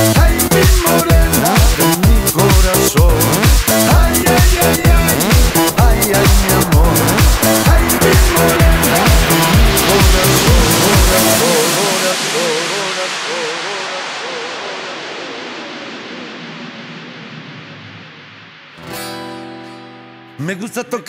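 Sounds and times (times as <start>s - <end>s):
falling noise sweep: 0.9s - 18.9s
kick drum beat: 2.0s - 11.2s
wavering synth line: 3.0s - 18.8s.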